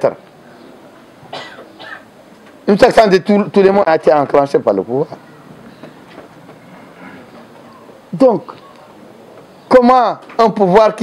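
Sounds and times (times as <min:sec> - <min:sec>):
person coughing: 0:01.3 - 0:02.1.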